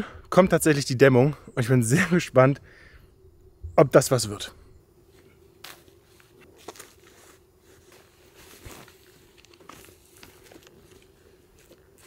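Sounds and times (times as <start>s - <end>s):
insulation rustling and crinkling: 5.1s - 12.0s.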